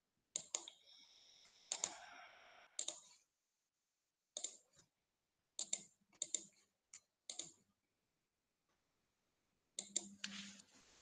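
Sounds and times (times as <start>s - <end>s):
computer mouse clicking: 0.3s - 0.8s, 1.7s - 2.2s, 2.8s - 3.3s, 4.3s - 4.9s, 5.6s - 7.7s, 9.8s - 10.3s.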